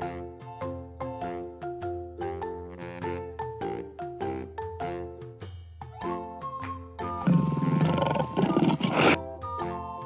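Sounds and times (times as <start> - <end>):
light children's music: 0.0 - 10.0
tiger roaring: 7.2 - 9.2.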